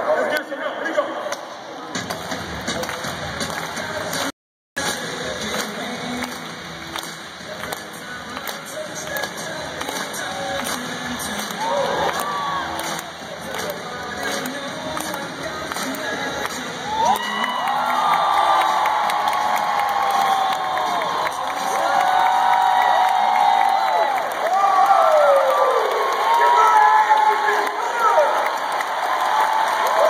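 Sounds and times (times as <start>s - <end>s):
arena crowd cheering: 9.8s - 30.0s.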